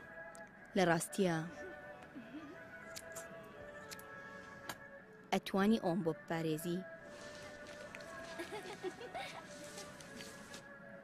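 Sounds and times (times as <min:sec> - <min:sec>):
held background music notes: 0:00.0 - 0:11.0.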